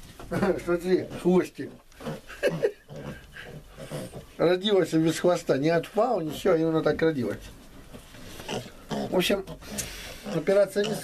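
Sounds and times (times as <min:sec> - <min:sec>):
piglets grunting: 0:00.4 - 0:04.6, 0:08.2 - 0:11.0.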